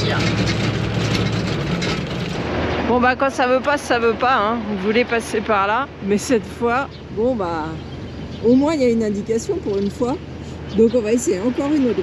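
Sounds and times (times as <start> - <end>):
diesel truck engine drone: 0.0 - 12.0.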